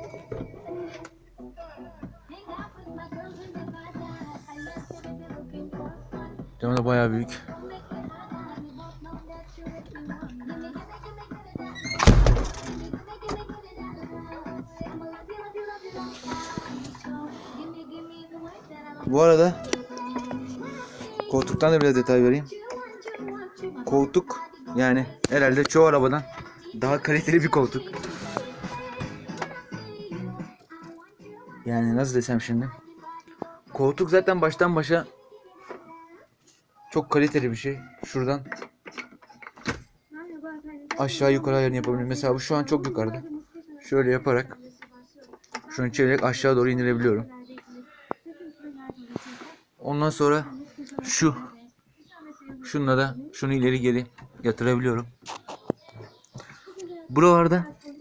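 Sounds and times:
background music: 0.0 - 58.0
door shutting thump: 11.9 - 12.8.

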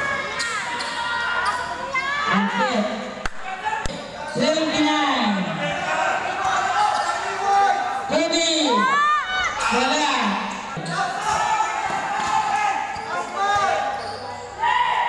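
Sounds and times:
people shouting: 8.6 - 13.8, 14.6 - 15.0.

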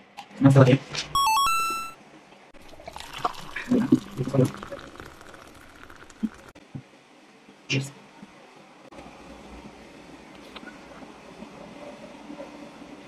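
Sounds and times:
electronic stepped tones: 1.2 - 2.0
milk pouring into a glass: 2.6 - 6.6.

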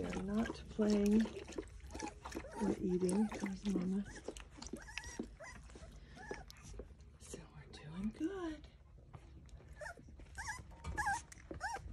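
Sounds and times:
puppies whimpering: 1.3 - 6.8, 9.7 - 11.9.

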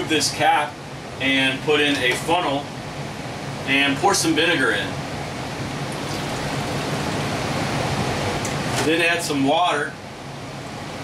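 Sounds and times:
liquid trickling through a funnel: 5.9 - 7.1.

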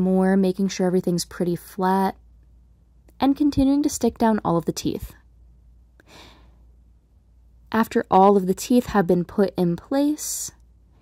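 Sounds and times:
woman inhaling softly: 6.0 - 6.7.

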